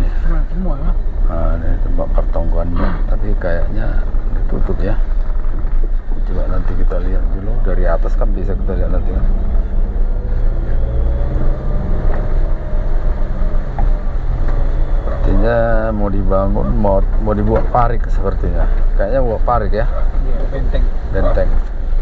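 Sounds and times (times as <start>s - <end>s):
low engine hum: 0.0s - 22.0s
faint rising tone: 7.5s - 17.1s.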